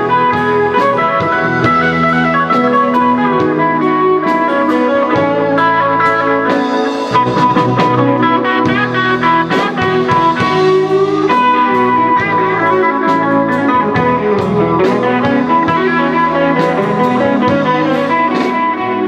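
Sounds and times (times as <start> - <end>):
electric guitar: 0.0 - 19.0
live band playing: 0.0 - 19.0.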